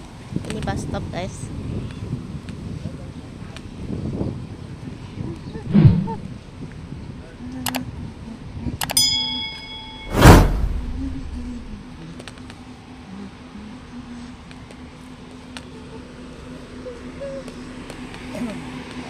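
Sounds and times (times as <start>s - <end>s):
bell ding: 9.0s - 10.4s
low hum: 9.6s - 12.2s
loud whoosh: 10.0s - 11.8s.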